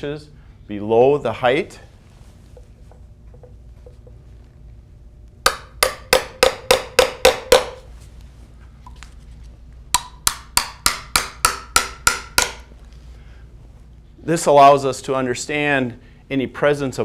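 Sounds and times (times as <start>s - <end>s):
hammer tapping metal probe: 2.6s - 4.2s, 5.4s - 7.8s, 9.9s - 12.7s.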